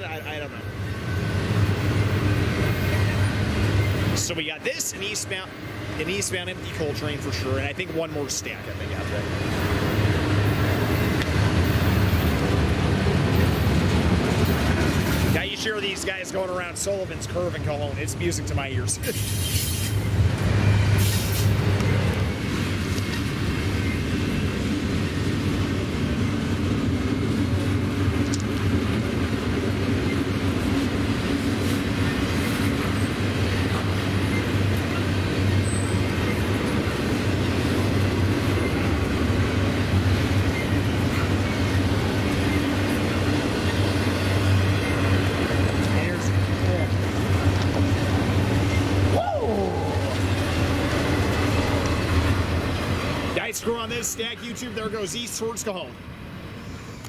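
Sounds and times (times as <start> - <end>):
freight train wheels rumbling: 0.0 - 57.0.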